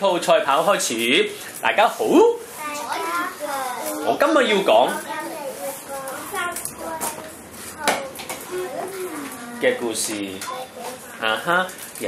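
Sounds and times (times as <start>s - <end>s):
young children speaking quietly: 5.0s - 9.8s.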